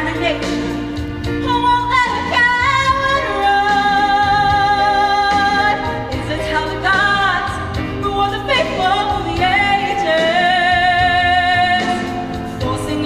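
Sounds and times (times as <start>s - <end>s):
accompaniment music: 0.0s - 13.0s
woman singing: 0.0s - 13.0s.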